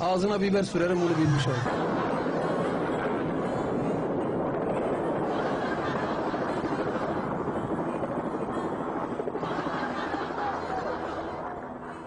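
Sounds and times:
helicopter hovering: 0.0 - 12.0.

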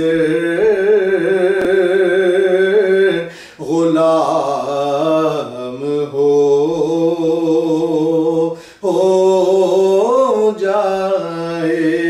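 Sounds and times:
man chanting devotional poem: 0.0 - 12.0.

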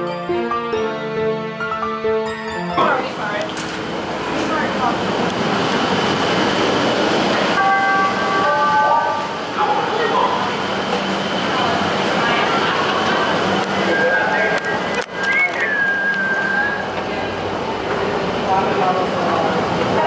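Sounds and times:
train noise: 1.0 - 20.0
crowd chatter: 2.7 - 20.0.

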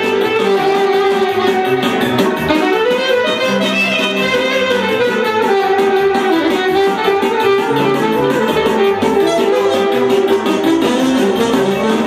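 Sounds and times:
alto saxophone melody: 0.0 - 12.0
bass line: 0.0 - 12.0
plucked guitar-like chords: 0.0 - 12.0.

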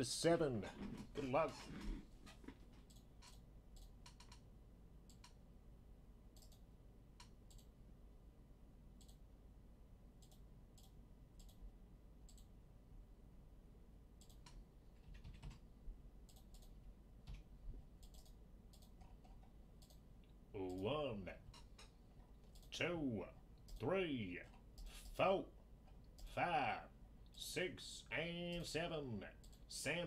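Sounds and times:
man's voice: 0.0 - 1.8, 20.6 - 21.4, 22.8 - 25.5, 26.3 - 30.0
low room hum: 0.0 - 30.0
mouse and keyboard clicks: 2.8 - 4.4, 18.0 - 20.0.

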